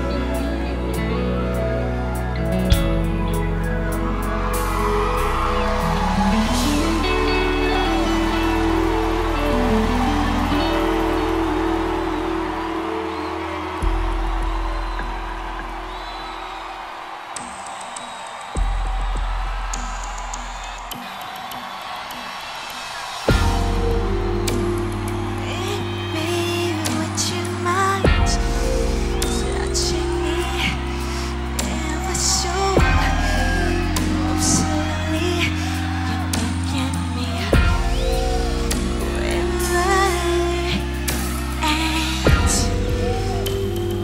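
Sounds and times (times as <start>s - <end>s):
deep bass notes: 0.0s - 16.5s, 23.3s - 44.0s
keyboard chords: 0.0s - 17.3s, 23.3s - 44.0s
crowd cheering and whooping: 0.0s - 44.0s.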